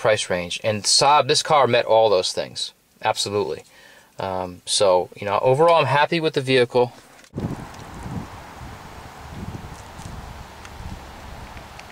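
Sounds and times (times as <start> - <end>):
wind on microphone: 7.3 - 11.9.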